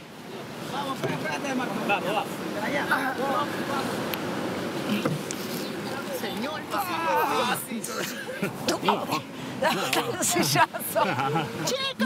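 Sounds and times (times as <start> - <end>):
ocean surf: 0.0 - 12.0
wind: 0.0 - 12.0.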